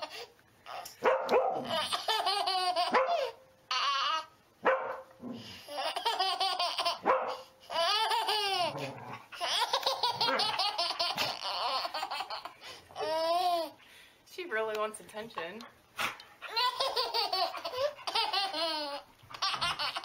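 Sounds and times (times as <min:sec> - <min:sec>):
dog barking: 0:01.0 - 0:01.7, 0:04.6 - 0:05.1, 0:07.0 - 0:07.4
baby laughing: 0:01.6 - 0:04.4, 0:05.6 - 0:13.8, 0:16.4 - 0:20.0.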